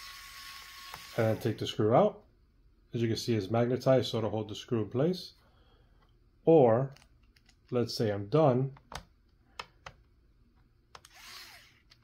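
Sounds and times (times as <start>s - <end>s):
electric screwdriver motor whirring: 0.0s - 1.4s, 11.0s - 12.0s.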